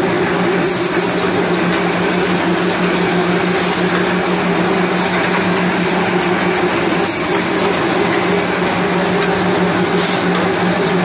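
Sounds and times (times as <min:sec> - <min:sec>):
packing machine hum and clatter: 0:00.0 - 0:11.0
high squeak falling in pitch: 0:00.6 - 0:01.6, 0:07.0 - 0:08.0.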